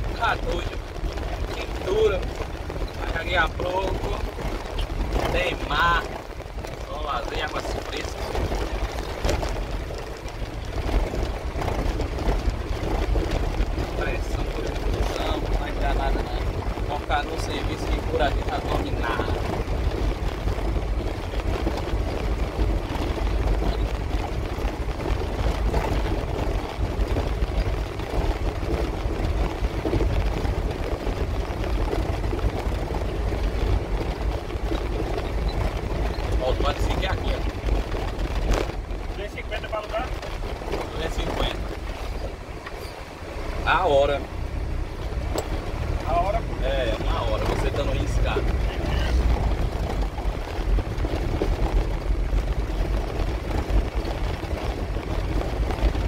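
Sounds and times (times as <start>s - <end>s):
truck engine rumble: 0.0s - 56.0s
tyres on cobblestones: 0.0s - 56.0s.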